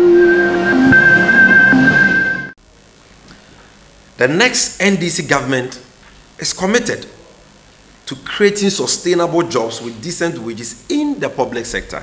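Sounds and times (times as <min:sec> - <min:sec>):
synthesized logo sting music: 0:00.0 - 0:02.6.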